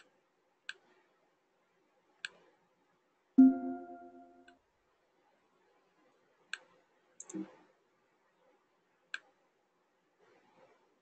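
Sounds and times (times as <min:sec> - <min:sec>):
computer mouse clicks: 0:00.0 - 0:01.0, 0:02.2 - 0:02.5, 0:06.5 - 0:07.6, 0:09.1 - 0:09.4.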